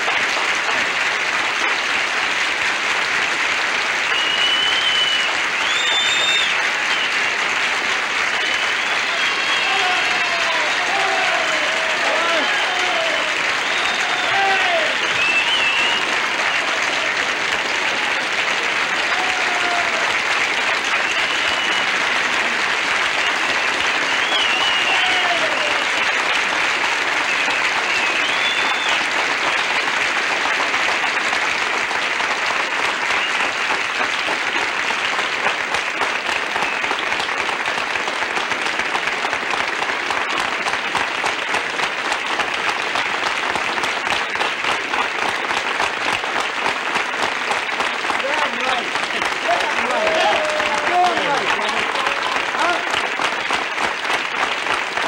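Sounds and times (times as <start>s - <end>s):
audience applauding: 0.0s - 55.0s
audience cheering: 3.4s - 55.0s.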